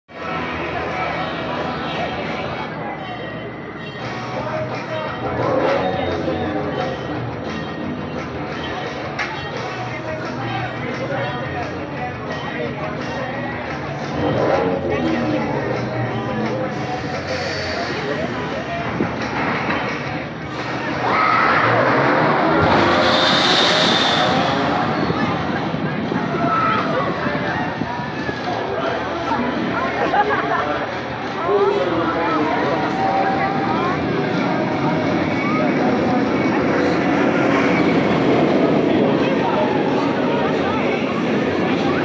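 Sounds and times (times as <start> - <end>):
people chattering: 0.1 - 42.0
people's voices: 0.1 - 42.0
roller coaster train roaring: 14.0 - 42.0
roller coaster rattling: 19.1 - 28.7.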